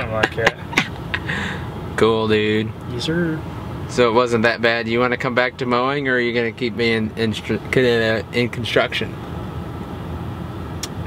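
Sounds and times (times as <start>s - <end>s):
truck engine rumble: 0.0s - 11.0s.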